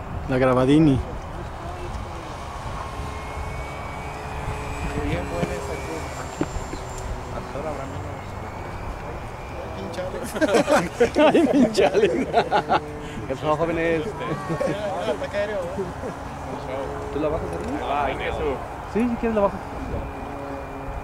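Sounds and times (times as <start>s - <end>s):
model airplane motors whining: 0.1s - 21.0s.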